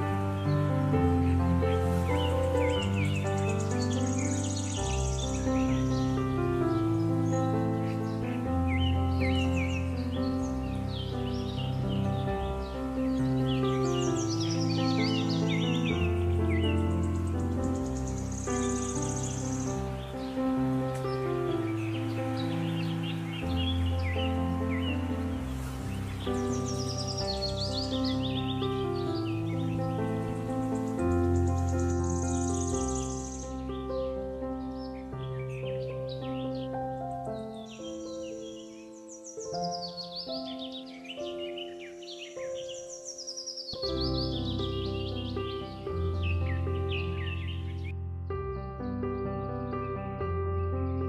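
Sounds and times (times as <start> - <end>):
birds chirping: 0.0 - 51.0
calm music with held notes: 0.0 - 51.0.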